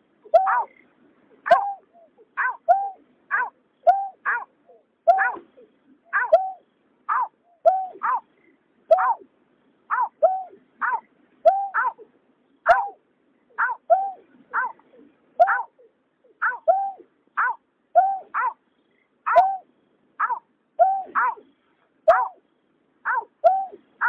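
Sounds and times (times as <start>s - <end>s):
bird calls in fast series: 0.2s - 24.0s.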